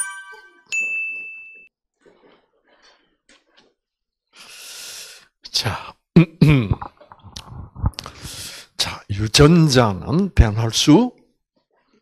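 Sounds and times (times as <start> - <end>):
bright ding: 0.0 - 1.7
button click chime: 0.0 - 1.7.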